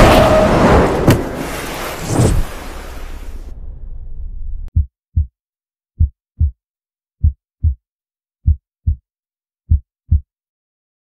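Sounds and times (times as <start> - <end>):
low rumble: 2.1 - 5.3
heartbeat thumps: 4.7 - 5.3, 6.0 - 6.6, 7.2 - 7.8, 8.4 - 9.0, 9.7 - 10.3.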